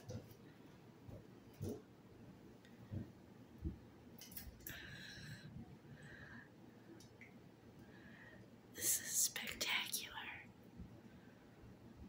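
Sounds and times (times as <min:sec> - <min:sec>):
person whispering: 0:08.8 - 0:10.5.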